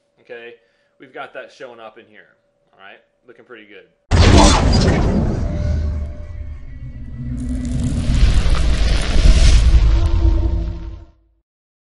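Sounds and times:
cinematic music: 4.1s - 11.1s
deep booming rumble: 4.1s - 11.1s
rushing noise: 4.1s - 11.1s.

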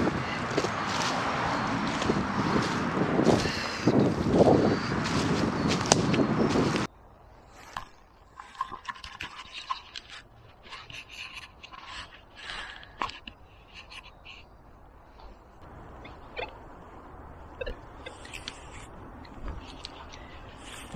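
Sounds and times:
footsteps through dry leaves: 0.0s - 6.9s
twigs snapping: 5.0s - 6.9s.

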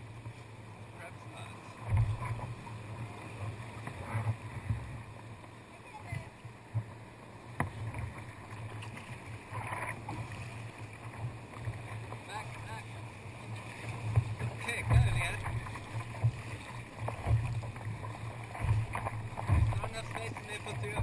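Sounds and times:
paddle strokes in water: 0.0s - 21.0s
surf washing over rocks: 0.0s - 21.0s
water splashing against hull: 0.0s - 21.0s.

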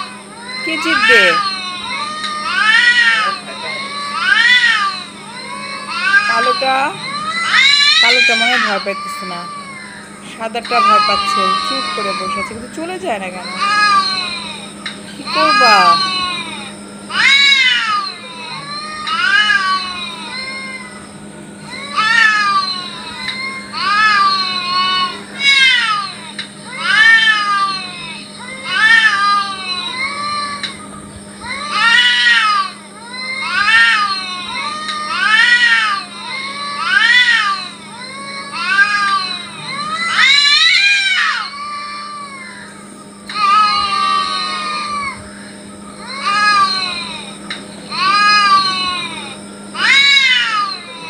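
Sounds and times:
cats yowling: 0.0s - 51.0s.

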